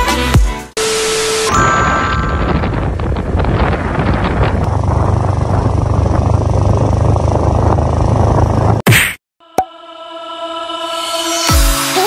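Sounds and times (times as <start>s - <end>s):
vehicle road noise: 1.5s - 8.8s
wind rumble: 1.5s - 8.8s.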